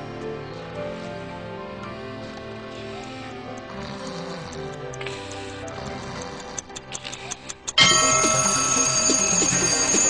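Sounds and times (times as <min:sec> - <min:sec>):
music: 0:00.0 - 0:10.0
clock ticking: 0:03.5 - 0:10.0
alarm clock ringing: 0:07.8 - 0:10.0.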